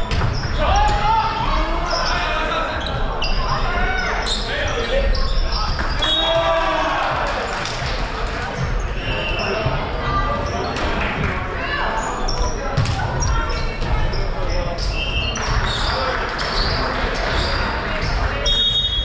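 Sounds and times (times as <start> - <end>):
volleyball hits and bounces: 0.0 - 1.0
people shouting in a gym: 0.0 - 7.7.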